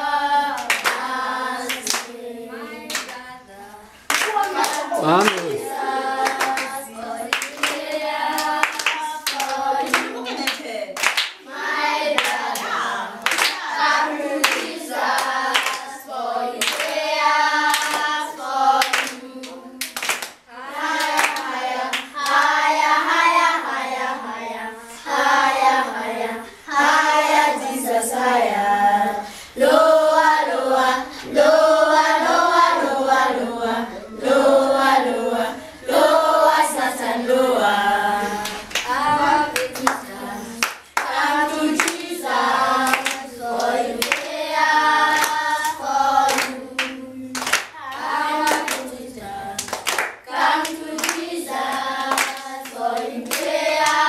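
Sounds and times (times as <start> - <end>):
children singing a hymn: 0.0 - 54.0
children clapping along: 0.5 - 2.2, 2.8 - 3.2, 4.1 - 22.8, 38.3 - 54.0.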